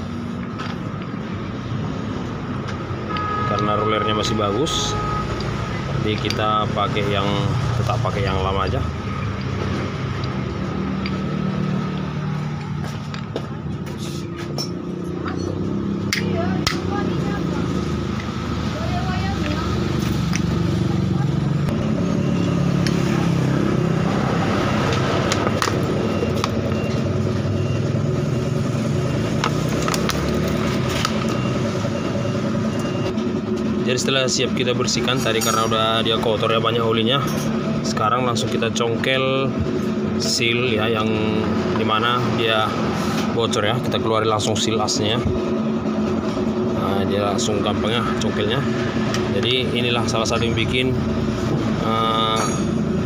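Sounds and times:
vehicle engine humming: 0.0s - 53.0s
indistinct voices: 3.1s - 27.7s, 46.5s - 52.8s.

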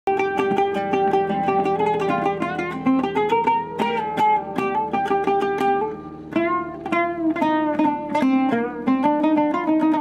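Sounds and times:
oud plucked notes: 0.1s - 10.0s.

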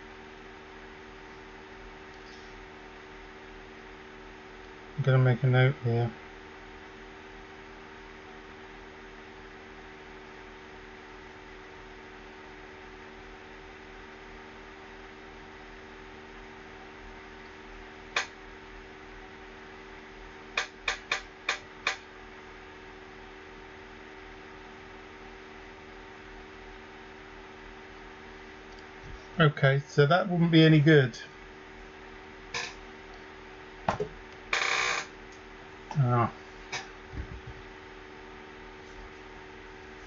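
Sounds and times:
room hum with fan noise: 0.0s - 40.0s.

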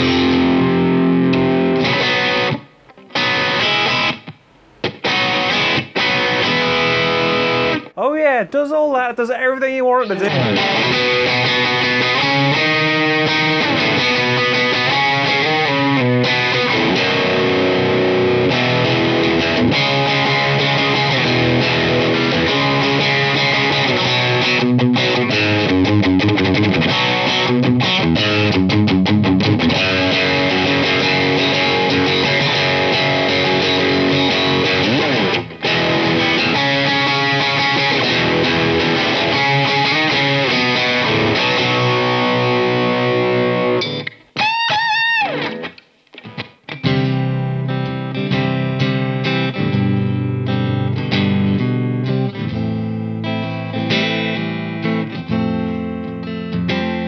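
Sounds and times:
electric guitar through amplifier: 0.0s - 8.0s, 10.0s - 57.0s.

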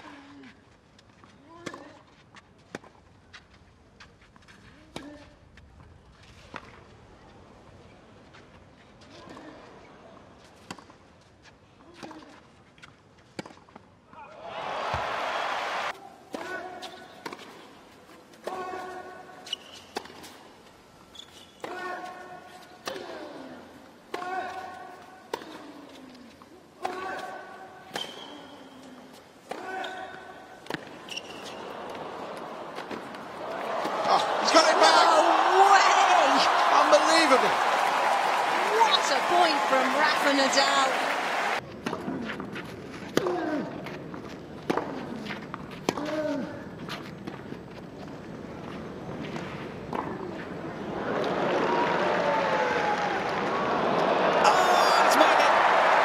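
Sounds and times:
crowd cheering and applauding: 14.4s - 15.9s, 31.6s - 41.6s, 50.8s - 56.0s
racquets striking tennis ball: 29.5s - 47.4s.

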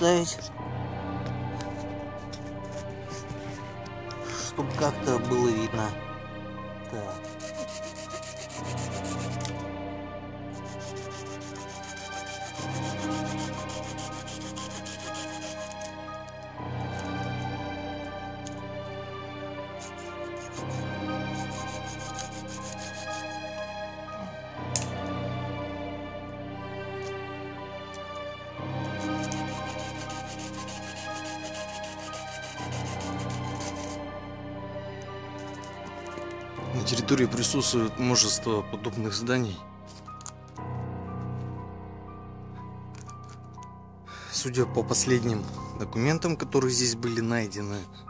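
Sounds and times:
background music: 0.0s - 48.0s
hand saw cutting branches: 7.0s - 9.5s, 10.6s - 16.0s, 19.8s - 23.4s, 28.8s - 34.0s.

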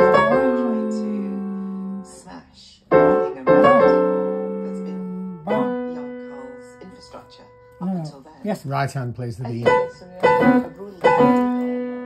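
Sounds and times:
piano chords ringing: 0.0s - 12.0s.

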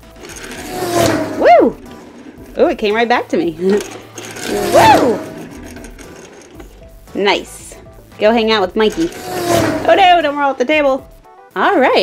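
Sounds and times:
toy motorbike rolling on table: 0.0s - 11.2s
rising whoosh: 0.2s - 3.0s
swooping whoo: 1.0s - 2.0s, 4.5s - 5.5s.

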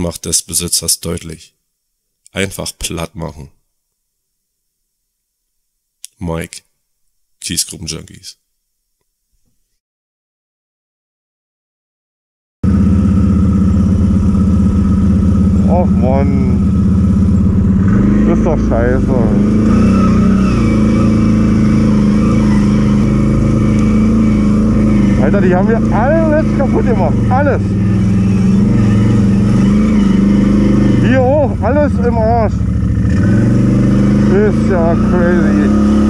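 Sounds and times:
atv engine running: 12.6s - 36.0s.

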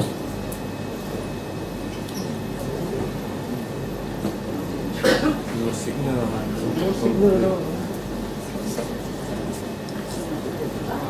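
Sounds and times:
faint background murmur: 0.0s - 11.0s
low electrical hum: 0.0s - 11.0s.

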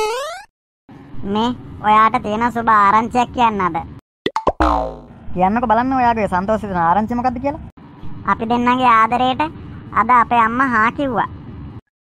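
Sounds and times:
quick cartoon pops: 4.3s - 5.1s
falling boing: 4.3s - 5.2s
dubbed voice speaking: 4.9s - 7.4s.

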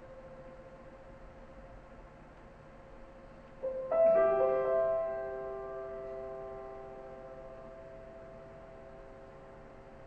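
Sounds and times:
piano chord ringing: 3.6s - 10.0s.

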